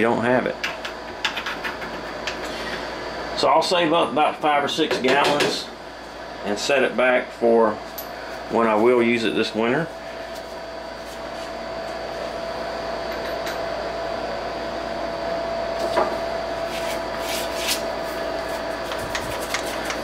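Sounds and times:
machine hum: 0.0s - 20.0s.

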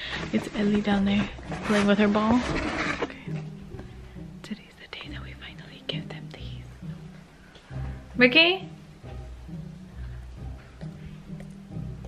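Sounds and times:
quiet background music: 0.0s - 12.0s
soft whispering: 4.4s - 6.8s.

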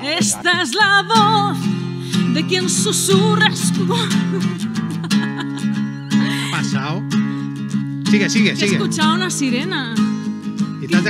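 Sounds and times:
acoustic guitar strumming: 0.0s - 11.0s.

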